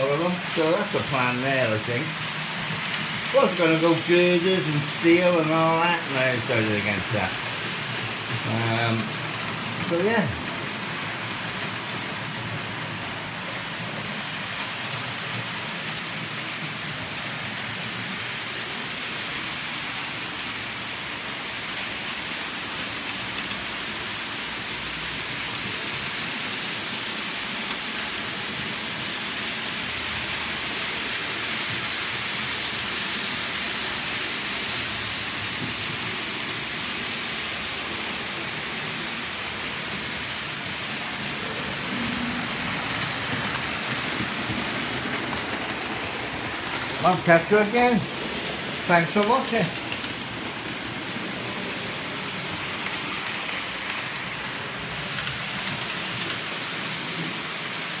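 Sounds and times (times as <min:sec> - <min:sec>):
model trains whirring on track: 0:00.0 - 0:58.0.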